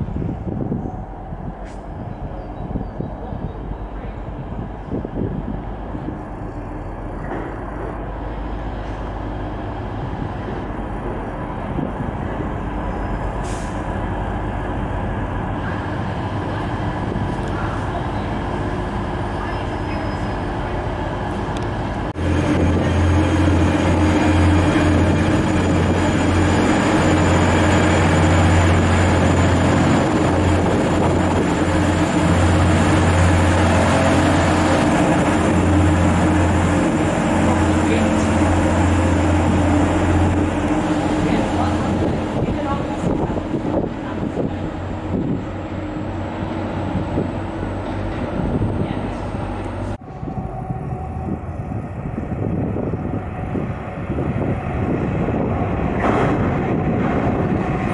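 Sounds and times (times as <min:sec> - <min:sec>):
diesel engine drone: 0:00.0 - 0:57.9
train rumble: 0:00.0 - 0:57.9.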